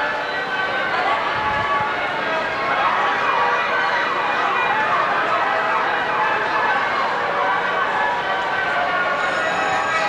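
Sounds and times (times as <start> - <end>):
carousel band organ playing: 8.4 - 10.0.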